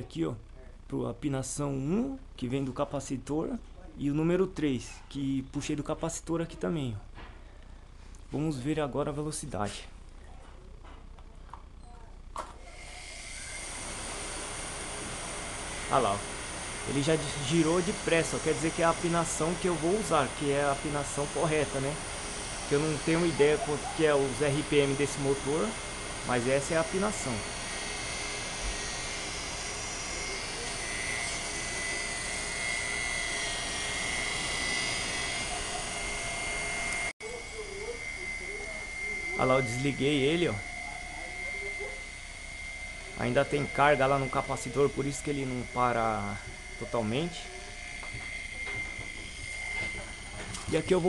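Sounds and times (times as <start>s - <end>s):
electric motor spinning up: 12.6s - 51.0s.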